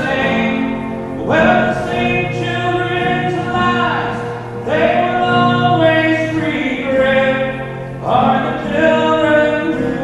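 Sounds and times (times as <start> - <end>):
instrumental accompaniment: 0.0 - 10.0
man singing: 0.0 - 10.0.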